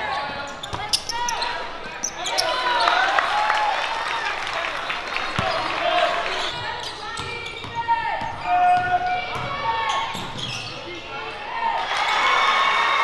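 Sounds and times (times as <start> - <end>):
sneaker squeaks: 0.0 - 3.1, 5.2 - 11.3.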